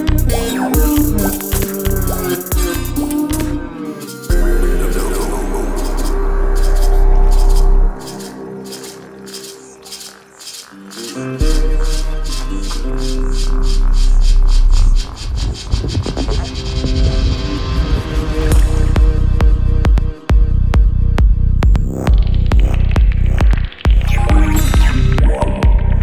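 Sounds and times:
deep sustained bass: 0.0 - 8.6, 11.4 - 26.0
dark psytrance track: 0.0 - 26.0.

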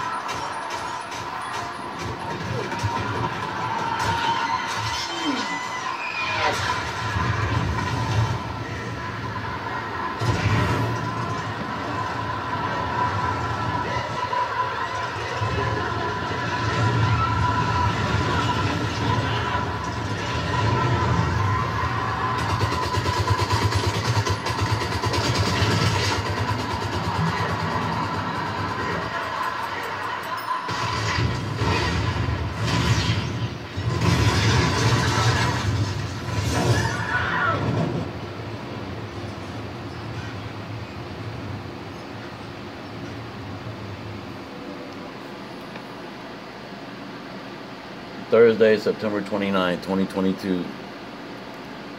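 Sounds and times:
film music with voices: 0.0 - 37.6.

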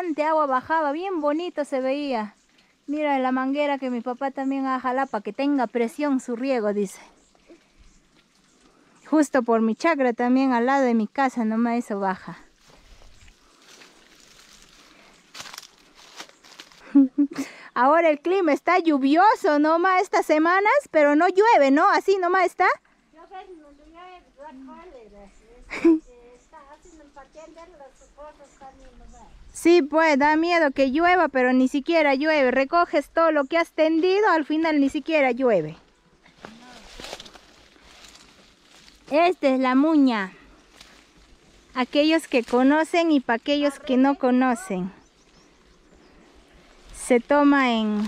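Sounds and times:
faint outdoor hiss: 0.0 - 48.0
footsteps rustling through grass: 12.4 - 17.2, 35.9 - 43.2, 44.7 - 48.0.

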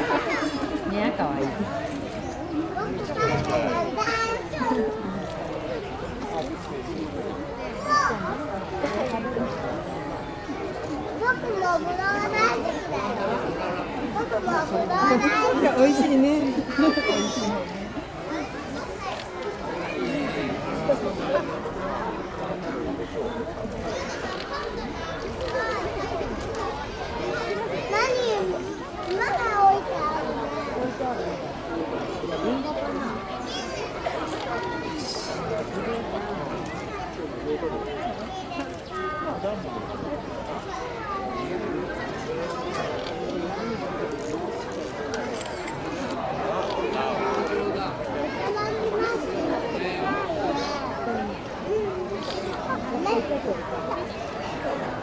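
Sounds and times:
children's voices: 0.0 - 55.0
onlookers chattering: 0.0 - 55.0
people talking at once: 0.0 - 55.0.

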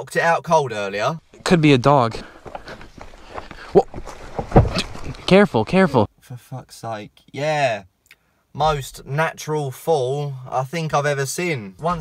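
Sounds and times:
box thumping onto rocks: 2.4 - 5.3.

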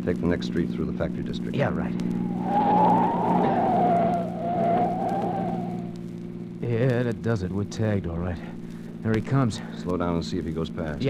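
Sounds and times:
car tyres squealing: 2.0 - 6.1.

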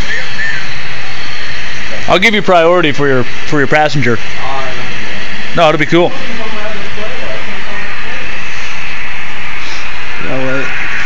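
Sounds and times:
loud steady hiss: 0.0 - 11.0
faint voices: 1.7 - 11.0.

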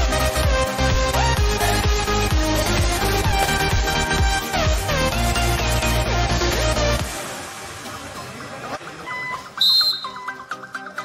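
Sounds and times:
electronic backing music: 0.0 - 11.0
loud high whistle tone: 9.1 - 10.4.

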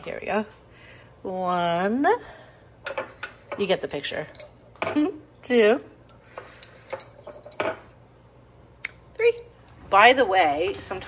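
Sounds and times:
cookware clinking and knocking: 2.8 - 5.1, 6.4 - 7.9.

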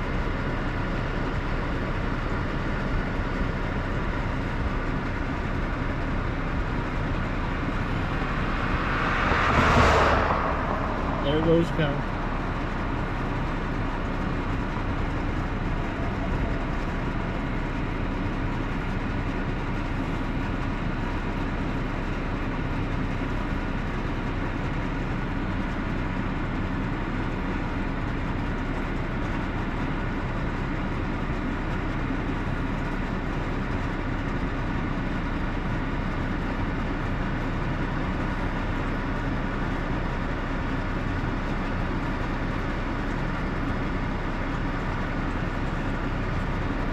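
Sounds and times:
car cabin rumble and hiss: 0.0 - 46.9.

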